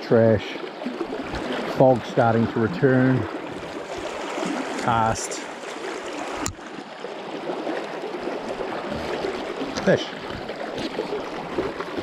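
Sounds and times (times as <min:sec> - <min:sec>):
shallow river rushing: 0:00.0 - 0:12.0.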